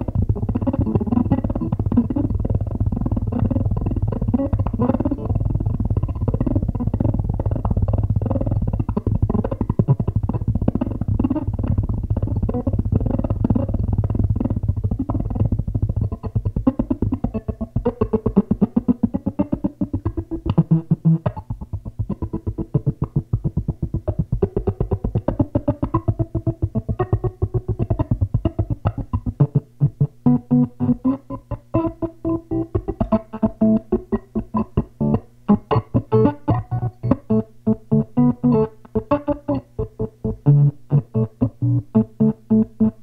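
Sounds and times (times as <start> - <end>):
electric guitar picked notes: 0.0 - 43.0.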